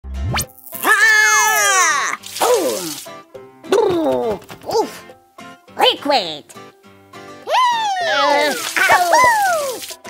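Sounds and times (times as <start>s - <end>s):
cartoon music: 7.4s - 10.0s.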